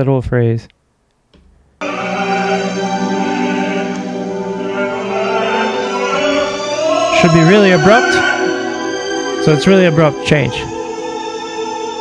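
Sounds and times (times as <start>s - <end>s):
male opera singer: 1.8s - 12.0s
orchestral accompaniment: 1.8s - 12.0s.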